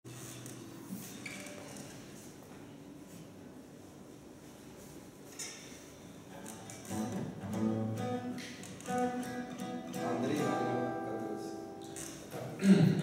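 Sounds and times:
acoustic guitar chords strummed: 6.9 - 13.0.

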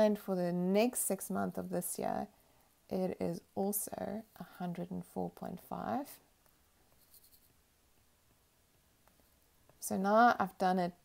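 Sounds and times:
stylus scratching on tablet screen: 6.9 - 7.6.

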